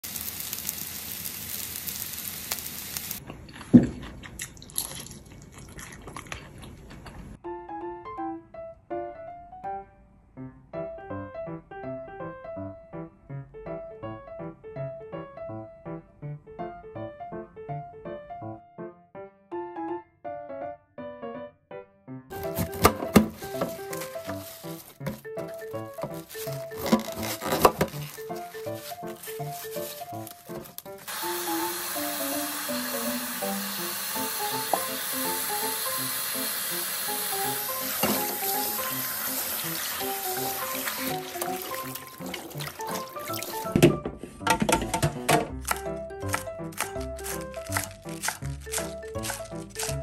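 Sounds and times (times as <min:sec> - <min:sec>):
oil sizzling in a pan: 0:00.0 - 0:03.2, 0:26.0 - 0:43.8
crisp crunching of food: 0:03.2 - 0:07.3, 0:22.3 - 0:31.1, 0:45.5 - 0:50.0
bright keyboard melody: 0:07.4 - 0:33.8, 0:37.2 - 0:50.0
light electric piano music: 0:07.4 - 0:44.0, 0:44.8 - 0:50.0
crackly rustling: 0:22.3 - 0:31.1.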